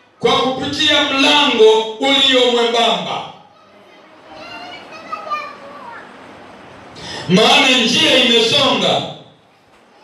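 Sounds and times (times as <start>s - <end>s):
children talking: 3.4s - 6.8s.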